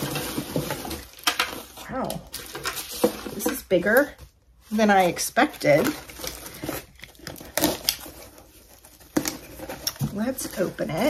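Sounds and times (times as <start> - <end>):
cardboard box rustling: 0.0 - 11.0.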